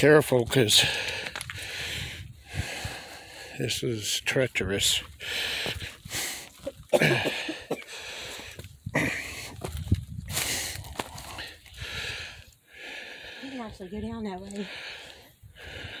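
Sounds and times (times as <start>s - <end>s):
hard breathing: 0.8s - 3.8s, 4.9s - 16.0s.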